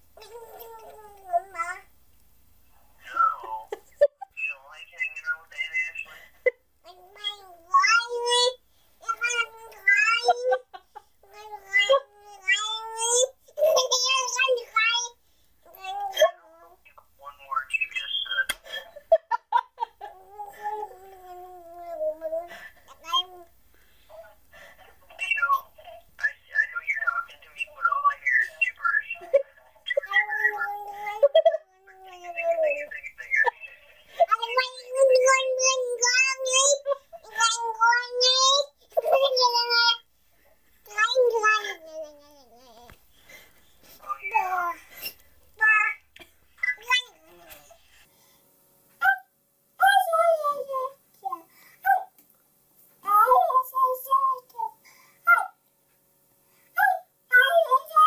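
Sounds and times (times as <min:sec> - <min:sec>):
baby babbling: 0:00.2 - 0:01.9, 0:03.1 - 0:03.8, 0:06.9 - 0:10.6, 0:11.2 - 0:17.6, 0:20.0 - 0:23.5, 0:24.1 - 0:40.1, 0:40.8 - 0:43.4, 0:44.0 - 0:47.8
toddler whining: 0:00.2 - 0:01.9, 0:11.2 - 0:15.1, 0:20.0 - 0:23.5, 0:30.0 - 0:32.9.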